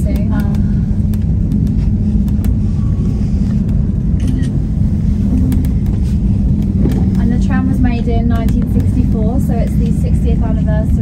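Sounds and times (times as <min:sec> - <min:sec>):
tramway cabin rumble: 0:00.0 - 0:11.0.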